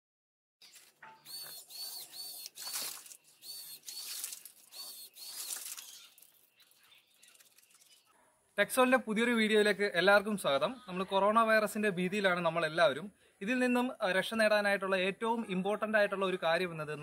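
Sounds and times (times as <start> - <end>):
high chirp: 0.6 - 8.1.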